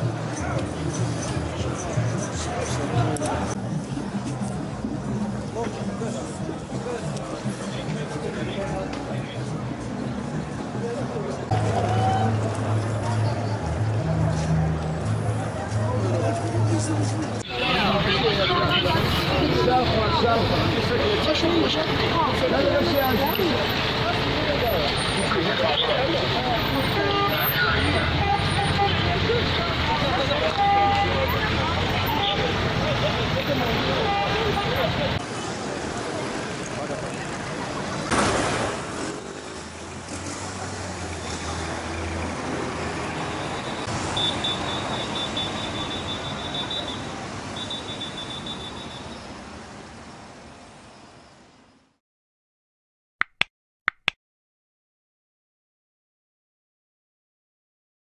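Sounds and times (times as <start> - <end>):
people talking over each other: 0.0 - 43.8
passing vehicle: 0.0 - 50.8
car engines: 0.0 - 52.0.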